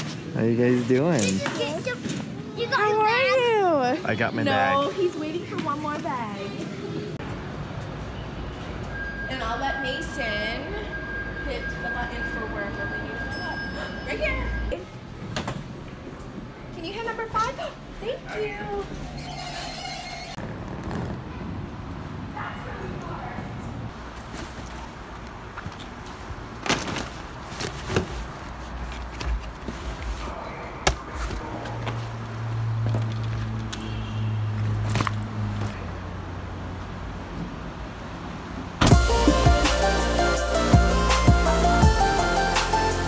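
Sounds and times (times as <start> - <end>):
music: 38.8 - 43.0.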